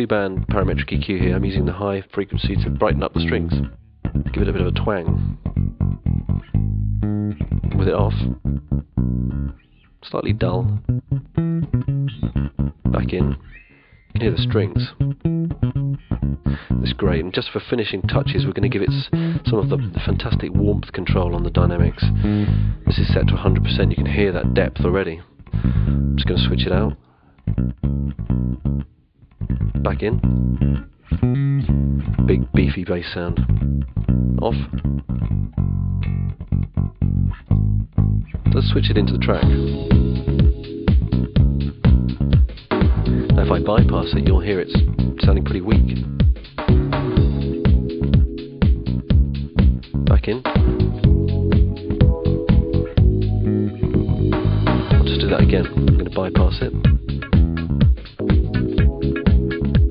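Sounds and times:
electric bass guitar plucked notes: 0.0s - 59.9s.

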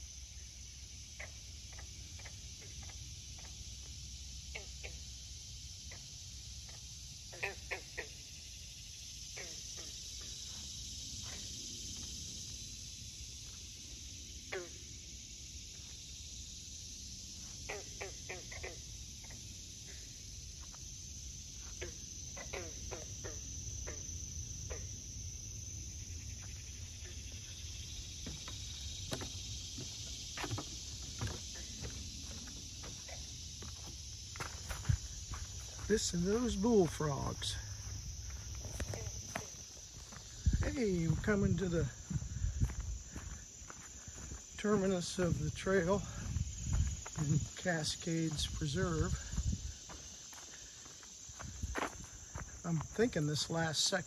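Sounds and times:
crickets chirping: 0.0s - 54.0s
frogs calling: 0.0s - 54.0s.

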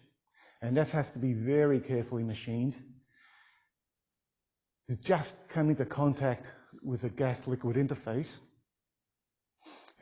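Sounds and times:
man talking: 0.6s - 2.8s, 4.9s - 8.4s
man breathing in: 3.0s - 3.8s, 9.6s - 10.0s.

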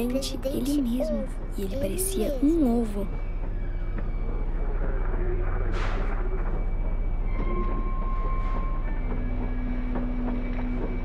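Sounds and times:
low mechanical rumble: 0.0s - 11.0s.

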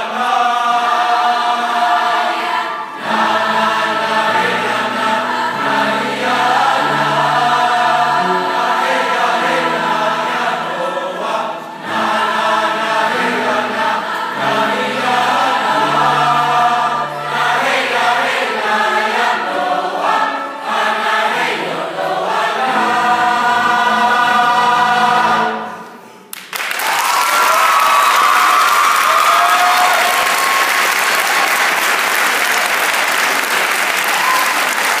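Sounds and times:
mixed choir singing: 0.0s - 26.1s
piano accompaniment: 0.1s - 26.3s
audience applause and cheering: 26.3s - 35.0s.

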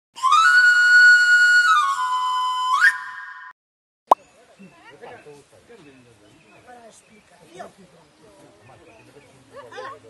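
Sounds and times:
whistle-like intro jingle: 1.8s - 3.6s.

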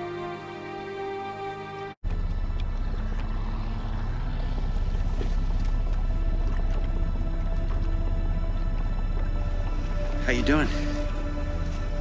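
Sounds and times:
motorboat engine running: 2.0s - 12.0s.

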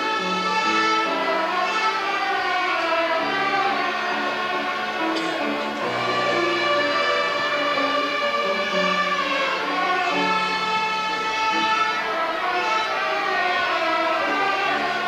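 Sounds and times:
violin ensemble playing: 0.0s - 15.0s.

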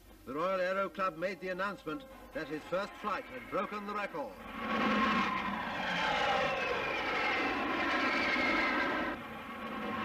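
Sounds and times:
jet engine roaring with whine: 2.2s - 10.0s.

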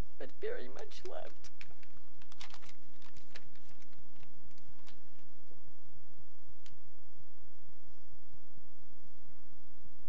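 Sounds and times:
papers handled near microphone: 0.8s - 5.3s.

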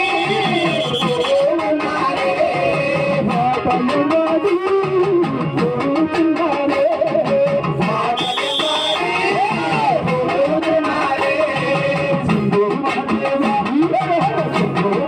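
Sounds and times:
amplified singing: 0.0s - 15.0s
fast drum beat: 0.0s - 15.0s.

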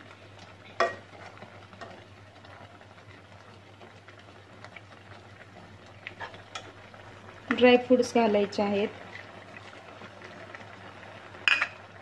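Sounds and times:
milk bubbling: 0.0s - 12.0s
spoon stirring in a pan: 0.4s - 2.8s, 3.8s - 6.9s
spoon clacking against pan: 0.8s - 1.1s.

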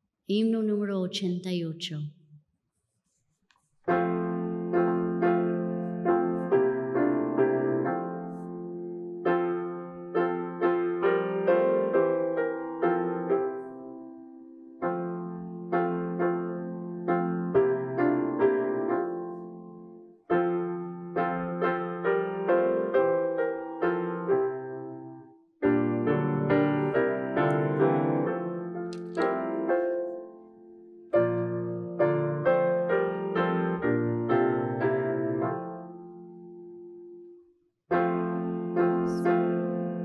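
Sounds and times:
piano playing hymn chords: 3.9s - 40.0s.

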